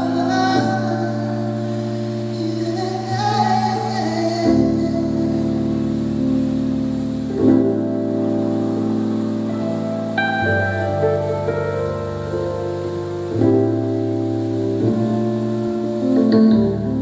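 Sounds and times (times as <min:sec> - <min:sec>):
person singing: 0:00.0 - 0:06.2.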